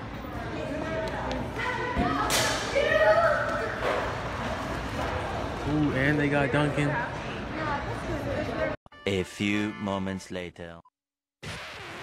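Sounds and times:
child shouting: 0:01.6 - 0:03.8.

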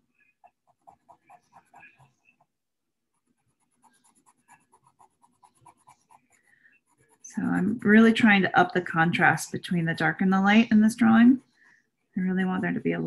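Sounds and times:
pencil scratching on paper: 0:00.0 - 0:11.6.

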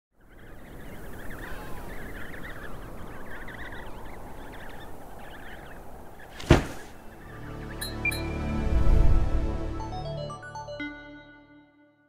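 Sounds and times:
penguins calling: 0:00.4 - 0:07.4.

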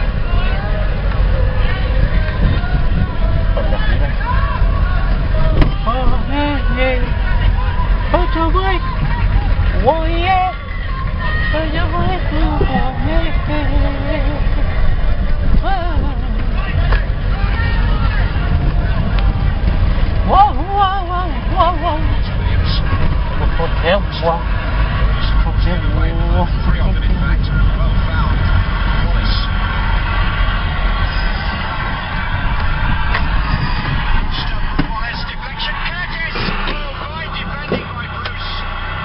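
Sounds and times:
car engine rumble: 0:00.0 - 0:39.0
road noise: 0:00.0 - 0:39.0
voices: 0:00.0 - 0:39.0.

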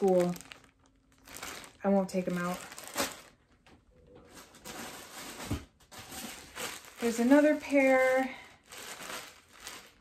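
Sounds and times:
plastic bags rustling and crinkling: 0:00.0 - 0:10.0.

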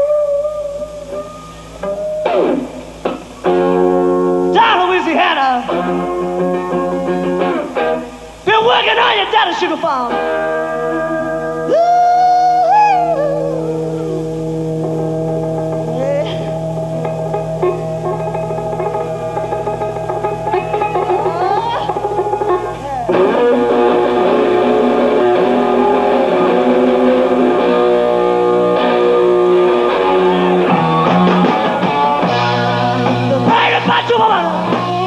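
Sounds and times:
blues-rock band playing: 0:00.0 - 0:08.9, 0:10.0 - 0:11.8, 0:12.4 - 0:35.0
electric guitar lead: 0:00.0 - 0:35.0.

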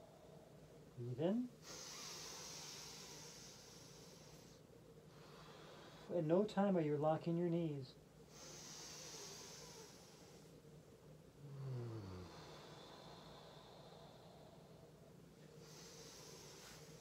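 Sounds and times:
woman breathing softly: 0:01.6 - 0:06.2, 0:08.2 - 0:17.0.

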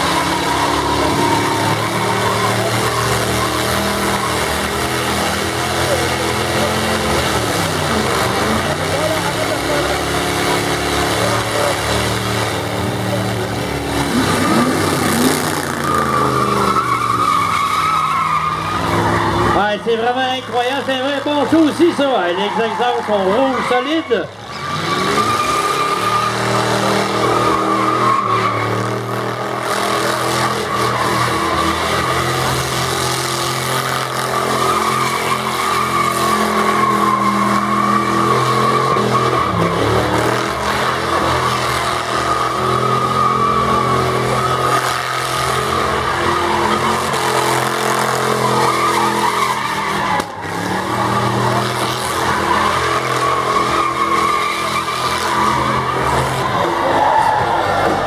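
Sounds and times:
car engine revving high: 0:00.0 - 0:58.0
tyres squealing on pavement: 0:00.0 - 0:58.0.

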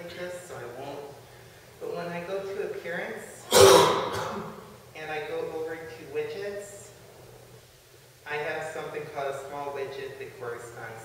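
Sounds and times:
person coughing loudly: 0:03.5 - 0:04.6.

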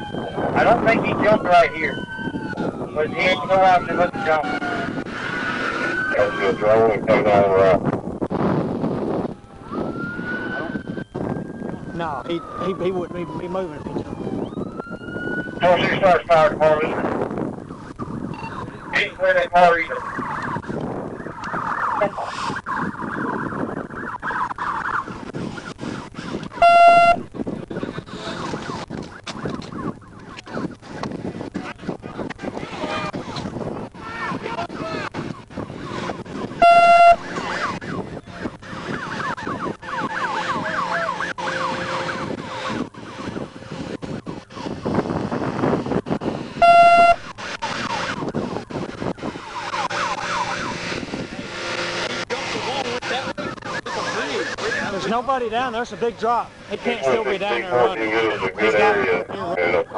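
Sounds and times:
short electronic beeps: 0:18.3 - 0:18.6, 0:26.6 - 0:27.2, 0:36.6 - 0:37.3, 0:46.6 - 0:47.3
indistinct voices: 0:52.2 - 0:59.9.

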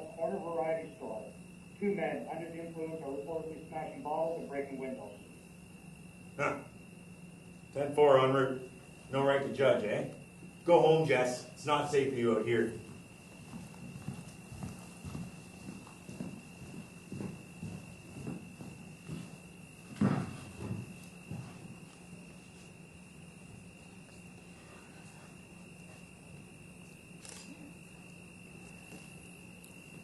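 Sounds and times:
faint steady hum: 0:00.0 - 0:30.0
hard-soled footsteps on stage floor: 0:12.6 - 0:22.8
thump: 0:20.0 - 0:20.8.

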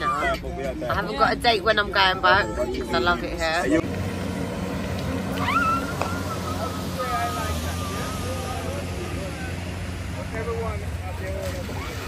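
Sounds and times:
distant voices calling out: 0:02.0 - 0:12.0.

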